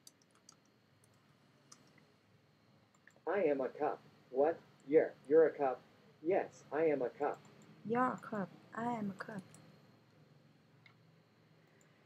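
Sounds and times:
typing on computer keyboard: 0.0s - 2.0s.

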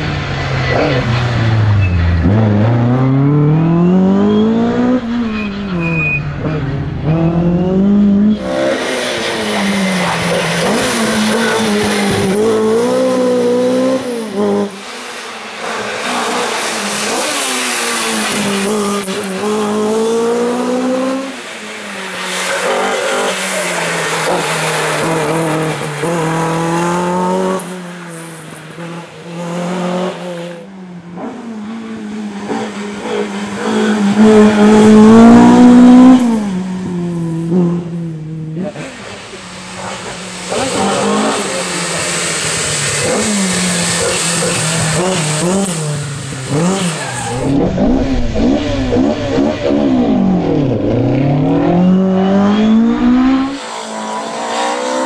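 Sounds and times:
rally car engine revving hard: 0.0s - 14.9s, 15.6s - 21.4s, 22.6s - 27.8s, 31.1s - 39.2s, 39.8s - 55.0s.

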